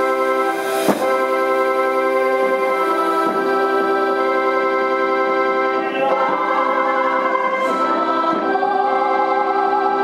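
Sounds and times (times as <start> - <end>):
organ chords on keyboard: 0.0 - 10.0
group singing a hymn: 2.1 - 10.0.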